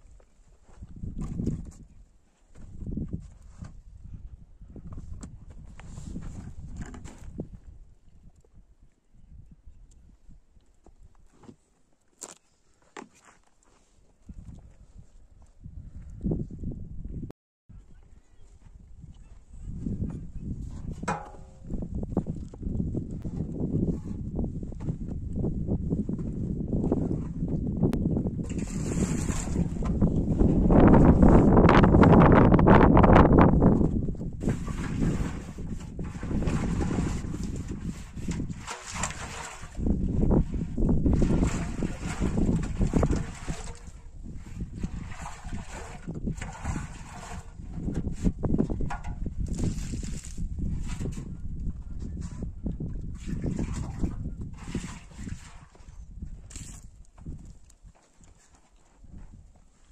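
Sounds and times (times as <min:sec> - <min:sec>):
wind buffeting microphone: 0:00.7 - 0:11.2, 0:14.2 - 0:59.9.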